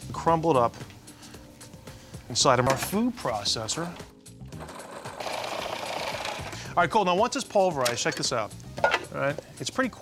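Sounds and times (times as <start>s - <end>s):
food processor chopping bread: 4.6s - 6.6s.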